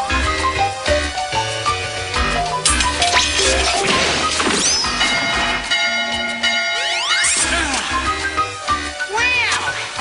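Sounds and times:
cartoon background music: 0:00.0 - 0:10.0
crash sound effect: 0:02.6 - 0:05.6.

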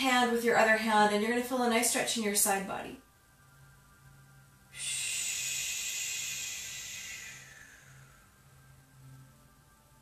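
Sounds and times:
faint low hum: 0:00.0 - 0:10.0
long breathy exhale: 0:04.7 - 0:08.8.

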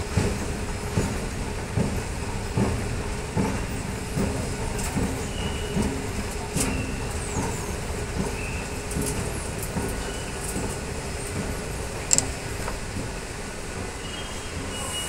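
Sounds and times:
rail station noise: 0:00.0 - 0:15.0
sharp click: 0:12.1 - 0:12.3.

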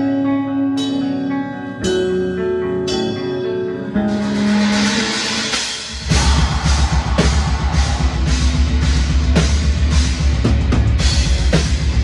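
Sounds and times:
live metal band playing: 0:00.0 - 0:12.0.

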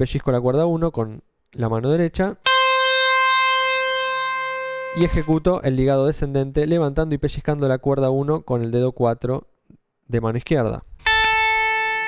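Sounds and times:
electric guitar note ringing: 0:02.4 - 0:05.6, 0:11.0 - 0:12.0.

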